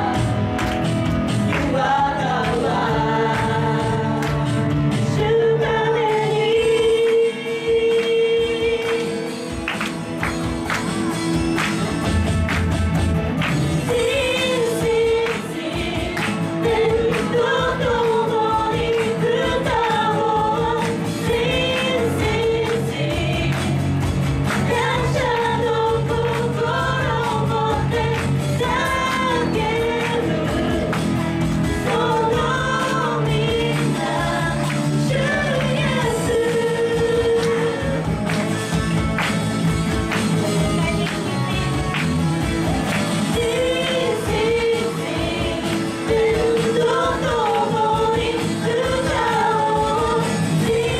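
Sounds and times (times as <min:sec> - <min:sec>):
live worship band playing: 0:00.0 - 0:50.9
woman singing: 0:01.5 - 0:09.4, 0:13.8 - 0:23.8, 0:24.6 - 0:31.1, 0:31.8 - 0:38.2, 0:40.5 - 0:42.0, 0:42.7 - 0:50.9.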